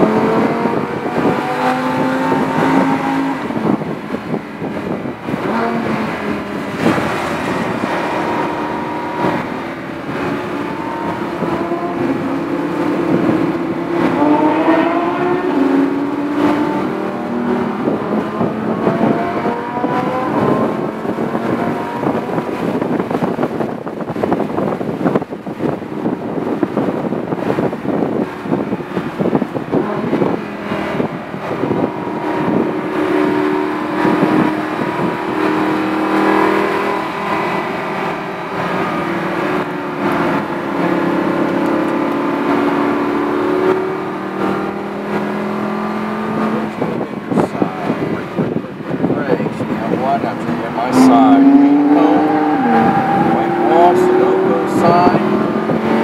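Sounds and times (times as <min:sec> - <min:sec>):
car engine from inside cabin: 0:00.0 - 0:56.0
tyre and road noise: 0:00.0 - 0:56.0.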